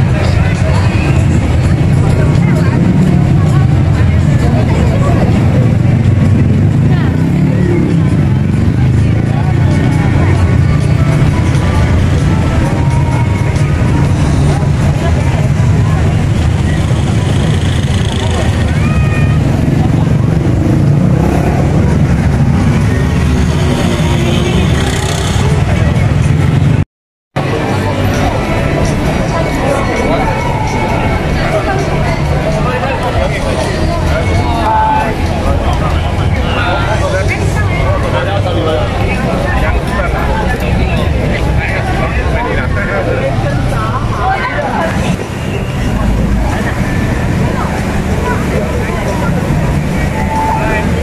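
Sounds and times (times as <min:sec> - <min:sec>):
crowd chatter: 0:00.0 - 0:26.8, 0:27.4 - 0:51.0
rumble of traffic: 0:00.0 - 0:26.8, 0:27.4 - 0:51.0.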